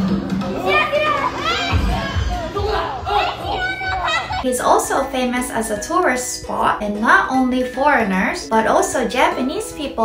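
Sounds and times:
children calling out: 0.5 - 4.5.

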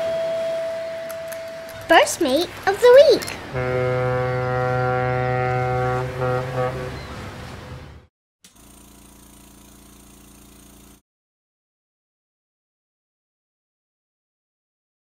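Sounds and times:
ship's horn blast: 0.0 - 8.1.

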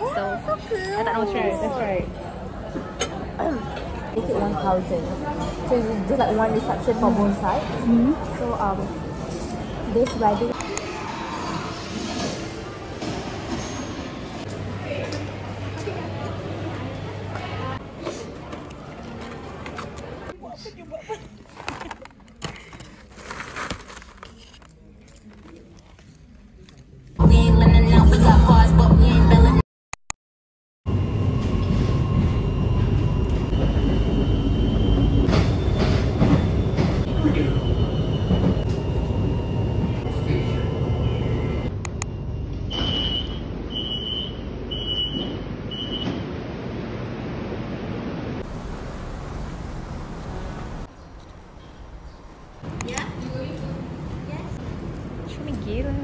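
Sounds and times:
crowd noise: 0.0 - 23.1
train wheels rumbling on rails: 31.0 - 41.7.

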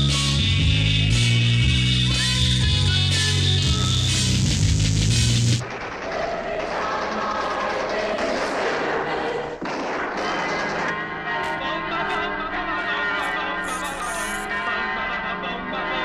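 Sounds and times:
ringing bells: 12.2 - 15.7.

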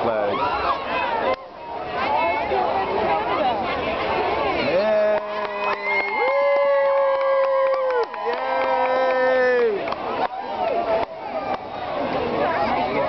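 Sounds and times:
voices: 0.0 - 13.0
crowd cheering: 4.4 - 13.0.

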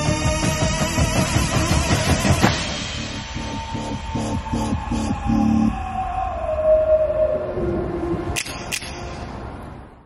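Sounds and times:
low held synthesizer tone: 0.0 - 10.0
synthesizer tone gliding down: 1.2 - 9.6.

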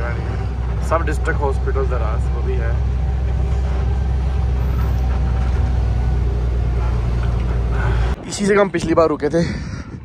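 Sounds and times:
truck diesel engine droning: 0.0 - 8.3.

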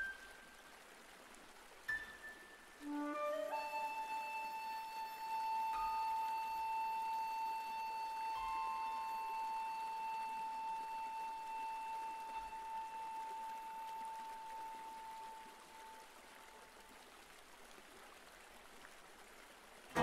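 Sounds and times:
long held high note: 2.8 - 16.1.

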